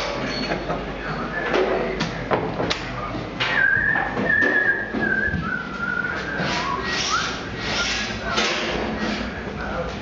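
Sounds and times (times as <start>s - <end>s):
person whistling: 3.5s - 7.4s.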